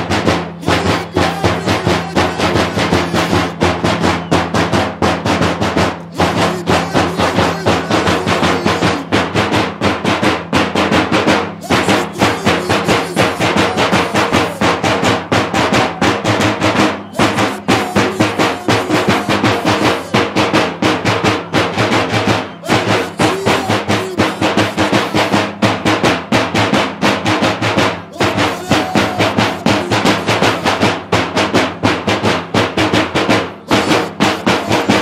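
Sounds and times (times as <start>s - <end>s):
drums beating fast rhythm: 0.0s - 35.0s.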